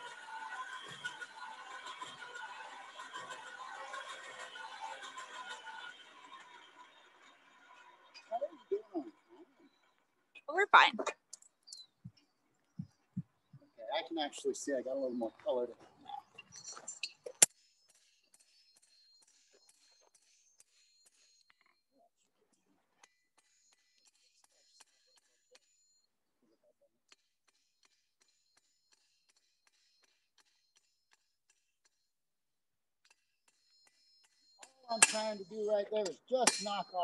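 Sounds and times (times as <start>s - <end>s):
hammer strike on metal: 34.9s - 35.4s, 36.4s - 36.8s.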